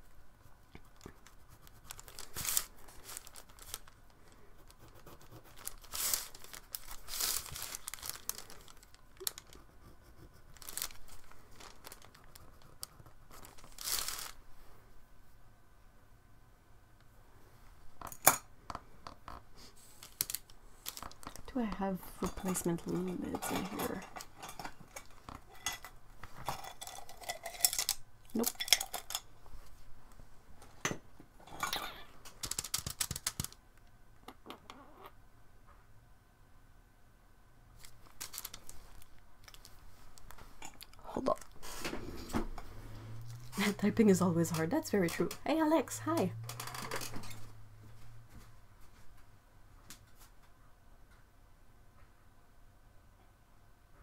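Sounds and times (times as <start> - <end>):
hands rubbing tape on paper: 0.4 - 14.4
small objects rattling in container: 5.6 - 9.6, 10.6 - 12.4, 13.4 - 14.4, 22.2 - 29.3, 38.2 - 38.8.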